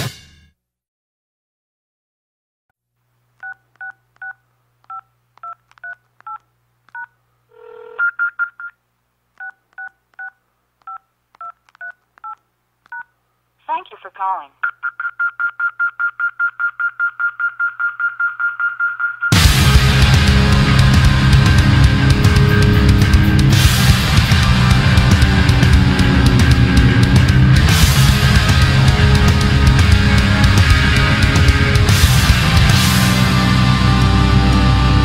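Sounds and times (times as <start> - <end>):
telephone keypad beeps: 7.0 - 8.8, 14.6 - 19.4.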